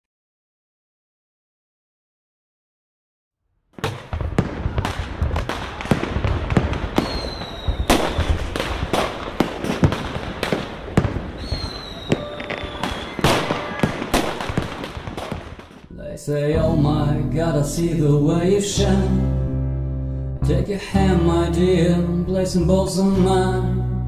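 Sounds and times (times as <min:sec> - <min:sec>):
fireworks bangs and crackles: 0:03.8 - 0:15.9
firework whistles: 0:03.9 - 0:15.8.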